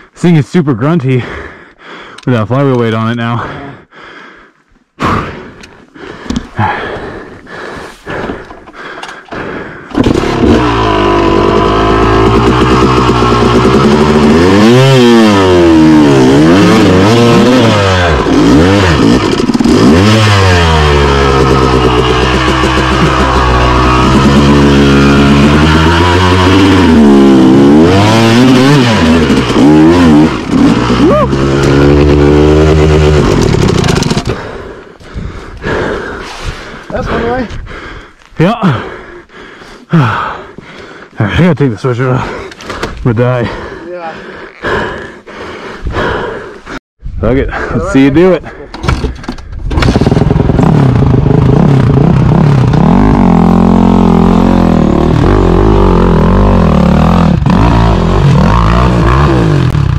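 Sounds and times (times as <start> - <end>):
dirt bike engine revving: 9.4 - 37.4, 49.7 - 59.9.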